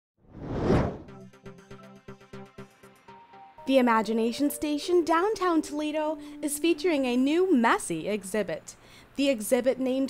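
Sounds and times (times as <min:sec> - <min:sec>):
whoosh: 0:00.3 - 0:01.1.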